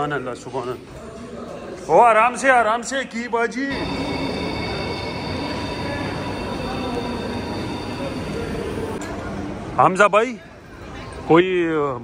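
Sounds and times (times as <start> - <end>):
faint high tones: 3.7 - 9.5
rumbling din of a concourse: 3.7 - 12.0.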